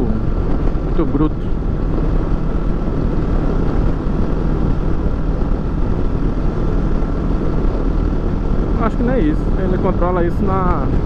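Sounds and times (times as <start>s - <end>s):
motorcycle engine running: 0.0s - 11.0s
wind and road rush: 0.0s - 11.0s.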